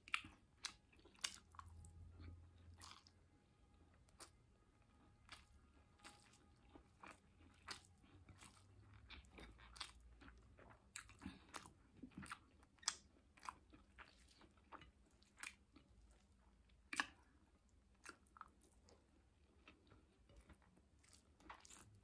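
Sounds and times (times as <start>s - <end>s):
person chewing food: 0.0s - 22.0s.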